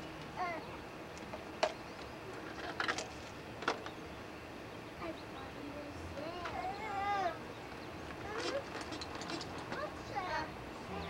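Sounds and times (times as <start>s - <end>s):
child crying: 6.5s - 7.4s.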